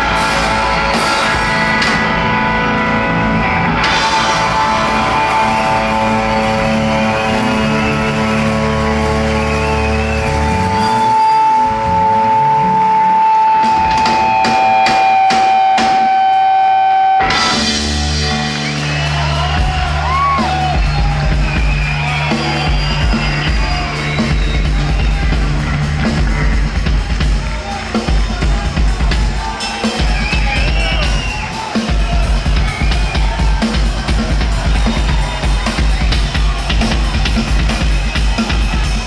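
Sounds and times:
rock trio playing live: 0.0 - 39.0.

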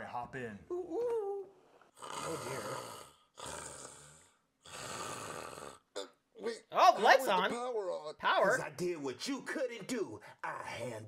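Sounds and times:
man snoring comically: 2.0 - 6.0.

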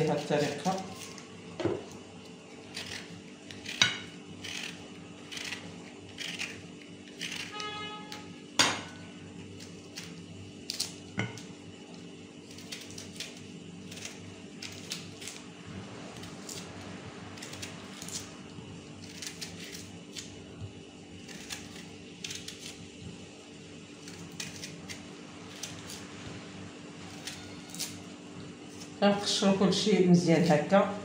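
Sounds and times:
steady low hum: 0.0 - 31.0
knife cutting strokes: 2.6 - 8.2, 24.0 - 26.1.

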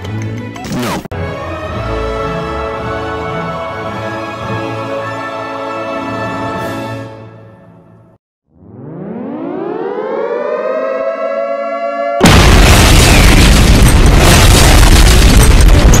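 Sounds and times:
air-raid siren winding up: 8.6 - 12.2
loud explosion: 12.2 - 16.0.

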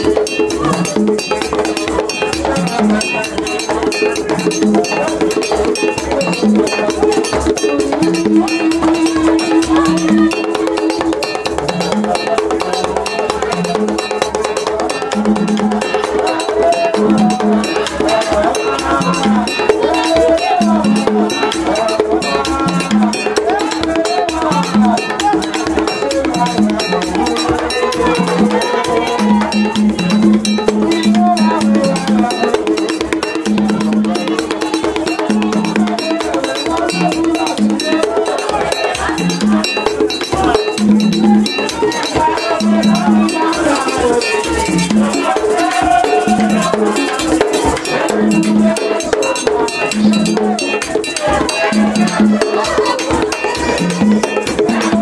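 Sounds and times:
drums: 0.0 - 55.0
metal percussion: 0.0 - 55.0
voices singing: 0.0 - 55.0.

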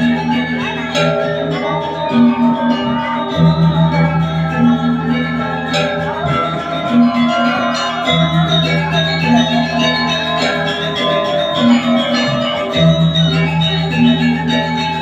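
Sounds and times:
gamelan playing: 0.0 - 15.0.

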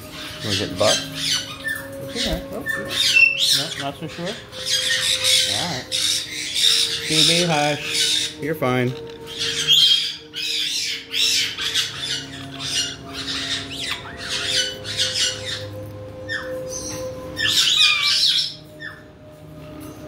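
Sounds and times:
parrots squawking and chirping: 0.0 - 20.0.

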